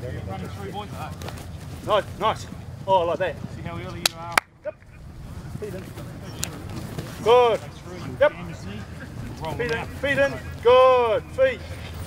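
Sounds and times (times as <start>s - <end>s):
indistinct voices talking: 0.0s - 12.0s
steady low hum: 0.0s - 12.0s.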